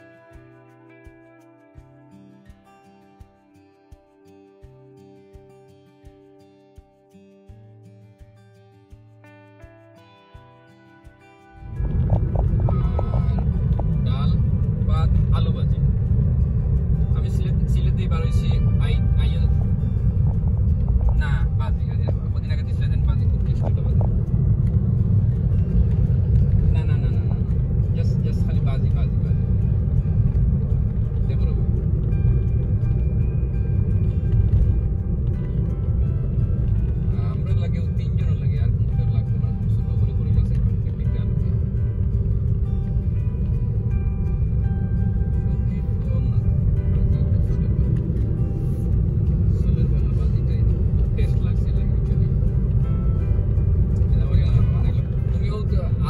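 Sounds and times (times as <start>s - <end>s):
music: 0.0s - 56.0s
car cabin rumble: 11.6s - 56.0s.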